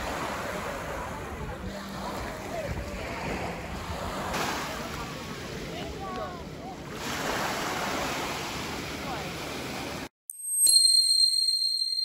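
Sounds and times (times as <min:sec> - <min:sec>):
wind buffeting microphone: 0:00.0 - 0:06.9
small waves on pebbles: 0:03.0 - 0:05.6, 0:06.9 - 0:10.0.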